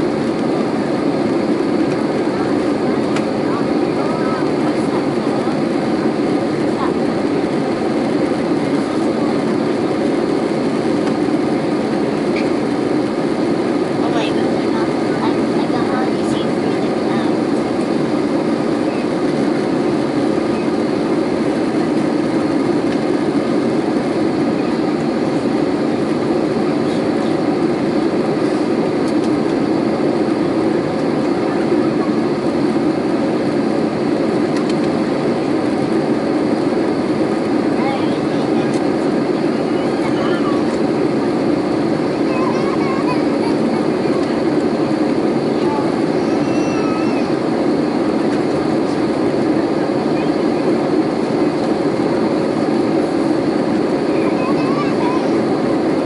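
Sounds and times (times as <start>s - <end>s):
airplane cabin engine and airflow rush: 0.0s - 56.0s.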